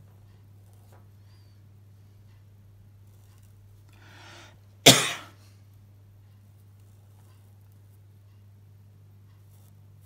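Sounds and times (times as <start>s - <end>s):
faint breath in: 3.9s - 4.6s
person coughing loudly: 4.9s - 5.4s.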